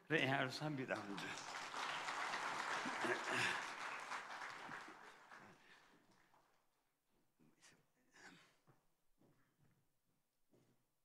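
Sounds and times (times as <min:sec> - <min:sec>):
audience applauding: 0:00.6 - 0:06.6.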